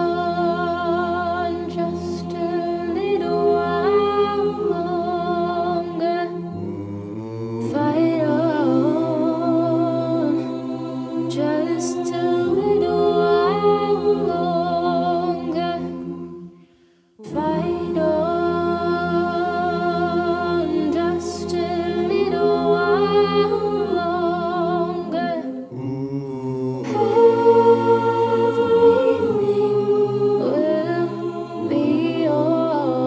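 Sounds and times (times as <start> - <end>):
choir singing a cappella: 0.0 - 33.0.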